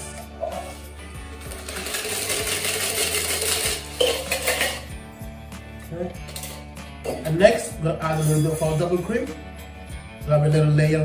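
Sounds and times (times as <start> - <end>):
cocktail pouring into glass: 1.4 - 4.9.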